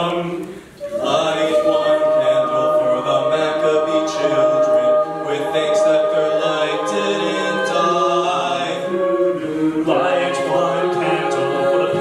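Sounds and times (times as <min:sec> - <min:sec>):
a cappella group singing chords: 0:00.0 - 0:12.0
male soloist singing: 0:00.0 - 0:12.0
vocal percussion beat: 0:00.0 - 0:12.0.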